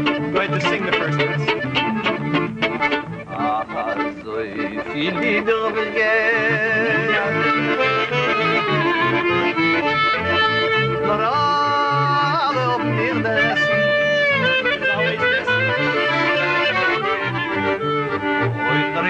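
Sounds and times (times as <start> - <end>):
accordion: 0.0 - 19.0
bowed cello bass line: 0.0 - 19.0
clarinet: 0.0 - 19.0
person singing: 5.0 - 8.8, 10.9 - 13.6.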